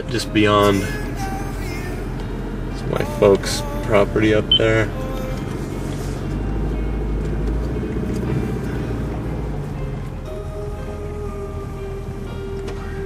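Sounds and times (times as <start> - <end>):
car road and engine rumble: 0.0 - 13.0
music playing: 0.0 - 13.0.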